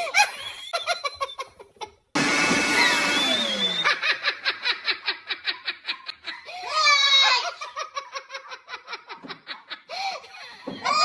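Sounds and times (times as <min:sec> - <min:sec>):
whistling pitched tones: 0:02.8 - 0:04.1.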